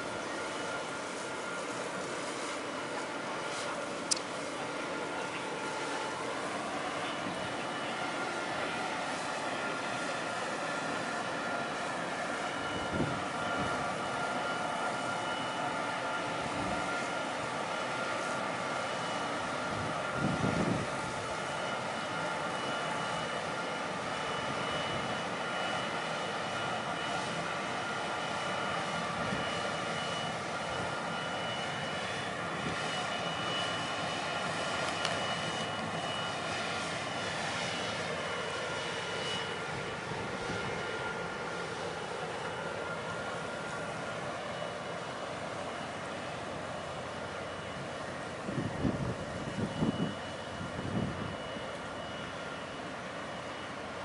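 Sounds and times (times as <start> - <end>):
ship gas turbines whining: 0.0 - 54.0.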